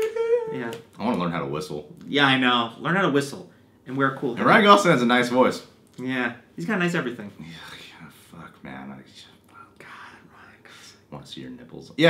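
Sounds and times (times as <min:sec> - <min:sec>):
man whispering: 0:07.3 - 0:11.1.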